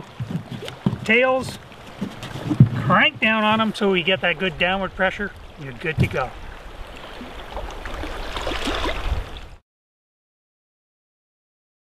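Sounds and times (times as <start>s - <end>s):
water washing against rocks: 0.0s - 9.5s.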